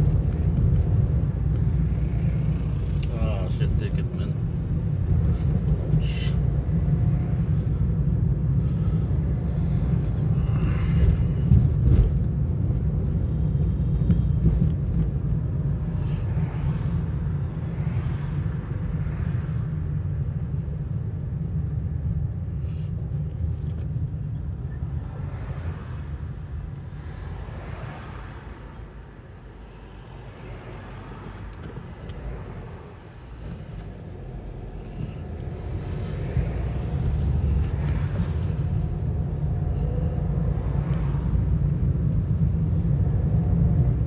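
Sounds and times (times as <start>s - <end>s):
car engine and road noise: 0.0s - 44.0s.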